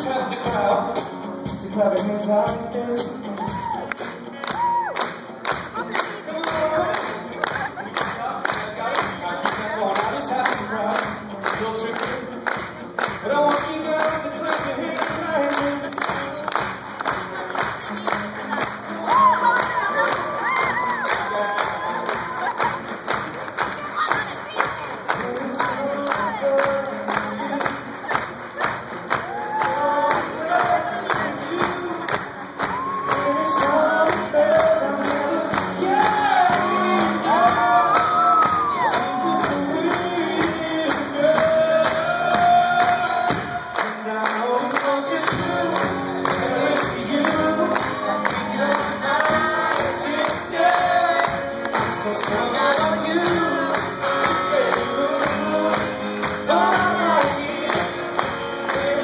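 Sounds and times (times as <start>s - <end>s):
crowd clapping a beat: 0.0s - 59.0s
live pop-rock song: 0.0s - 59.0s
crowd singing along: 13.2s - 20.5s, 25.1s - 59.0s.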